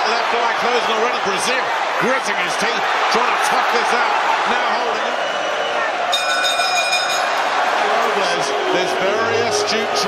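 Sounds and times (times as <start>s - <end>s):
arena crowd noise: 0.0s - 10.0s
boxing ring bell ringing: 6.1s - 7.4s.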